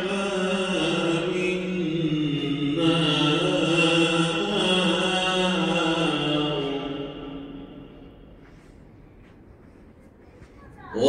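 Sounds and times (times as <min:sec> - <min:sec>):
person chanting melodically: 0:00.0 - 0:08.1.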